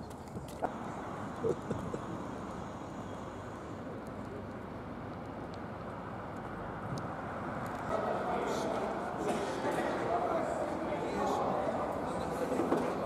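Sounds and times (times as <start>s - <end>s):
traffic going by: 0.0s - 13.0s.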